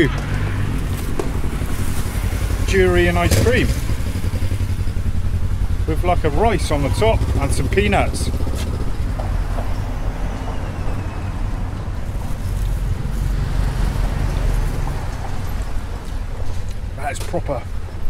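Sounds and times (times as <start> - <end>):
street traffic rumble: 0.0 - 18.0.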